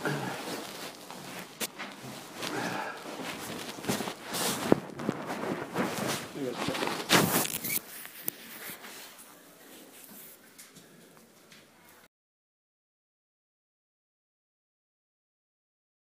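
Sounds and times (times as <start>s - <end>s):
rustling: 0.0s - 12.1s
people talking quietly: 8.2s - 12.1s.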